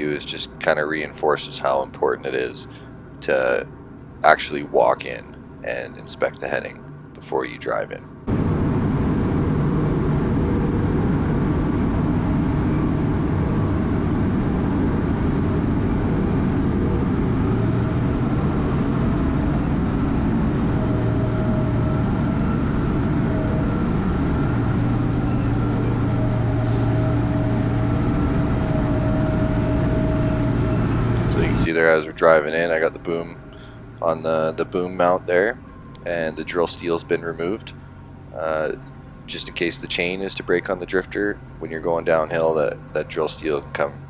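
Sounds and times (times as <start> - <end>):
engine and drivetrain hum: 0.0 - 44.0
high machine whine: 8.3 - 44.0.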